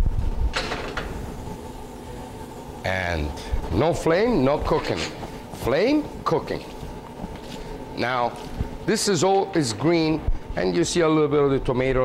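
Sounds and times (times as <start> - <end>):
low kitchen hum: 0.0 - 12.0.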